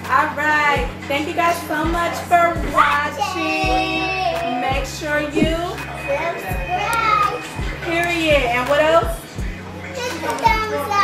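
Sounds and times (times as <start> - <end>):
music with thudding beat: 0.0 - 9.6
excited children's voices: 2.7 - 4.6, 6.1 - 7.6, 9.8 - 11.0.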